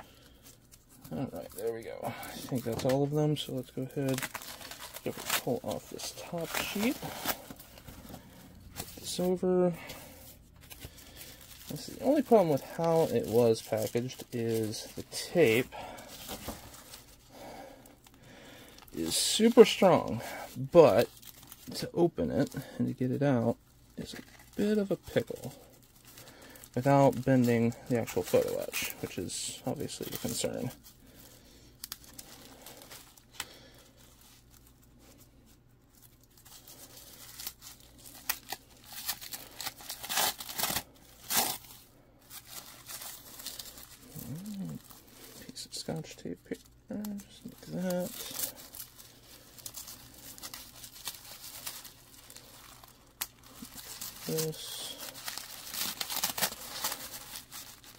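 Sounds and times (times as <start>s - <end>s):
plastic and paper crinkling: 0.0s - 57.9s
adhesive tape ripping: 37.2s - 41.7s, 47.4s - 57.9s.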